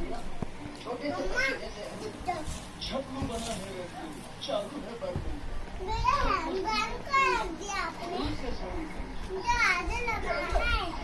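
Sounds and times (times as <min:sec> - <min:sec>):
young child's high-pitched voice: 0:09.4 - 0:11.0.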